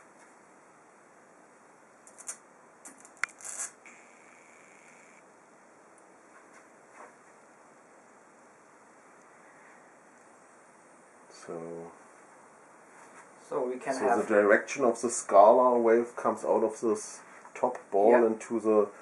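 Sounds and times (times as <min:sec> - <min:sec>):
sharp electric crackles and clicks: 0:02.0 - 0:05.2
tesla coil hiss: 0:02.1 - 0:05.2.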